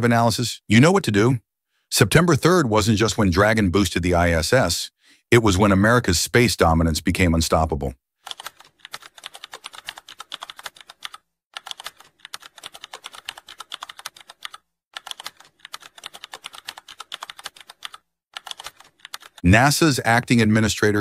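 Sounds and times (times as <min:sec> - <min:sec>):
keyboard typing clicks: 0:08.3 - 0:19.4.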